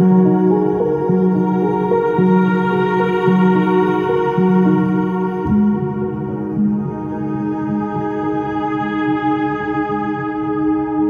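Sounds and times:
ambient relaxation music: 0:00.0 - 0:11.0.

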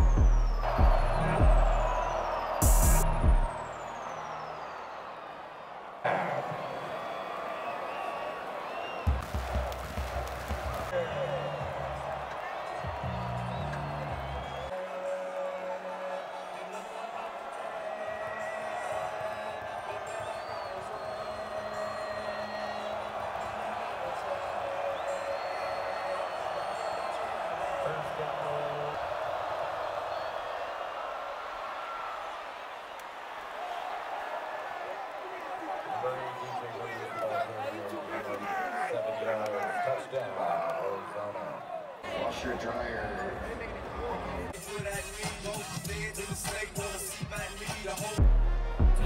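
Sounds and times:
stadium crowd voices: 0:00.0 - 0:49.0.

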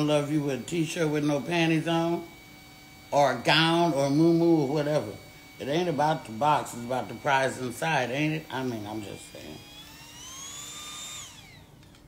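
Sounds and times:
small motor whining: 0:00.0 - 0:12.0.

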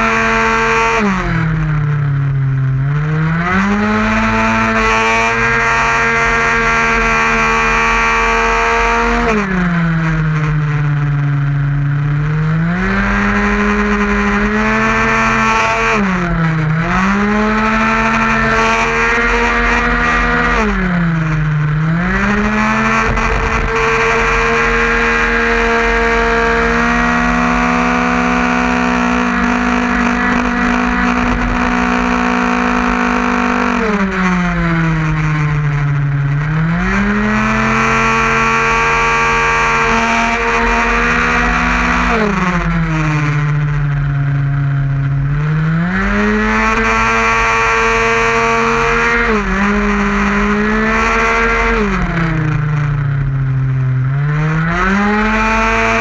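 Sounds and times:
scooter engine at high revs: 0:00.0 - 0:56.0.

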